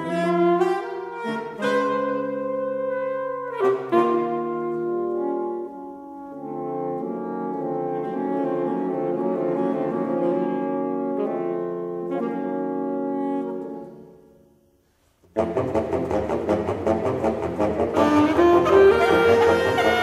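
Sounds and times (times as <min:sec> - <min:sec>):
saxophone quartet playing chords: 0:00.0 - 0:20.0.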